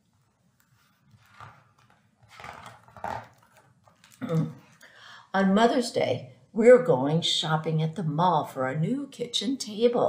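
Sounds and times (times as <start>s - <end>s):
book pages rustling: 0.0s - 4.2s.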